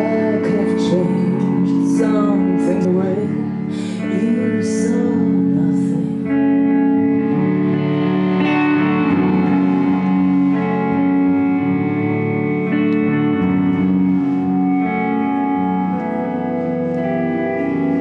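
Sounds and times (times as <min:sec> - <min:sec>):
bass guitar: 0:00.0 - 0:18.0
electric guitar chords: 0:00.0 - 0:18.0
live rock band: 0:00.0 - 0:18.0.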